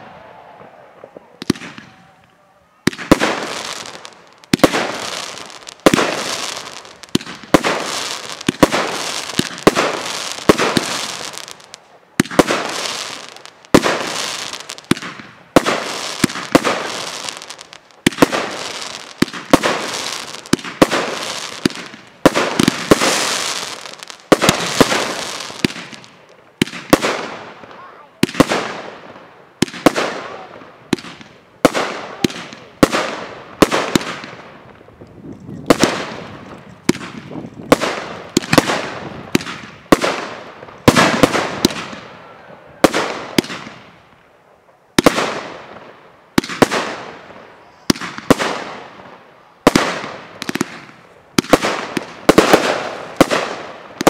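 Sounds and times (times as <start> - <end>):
aerial fireworks bursting: 0.0 - 44.0, 45.0 - 54.0.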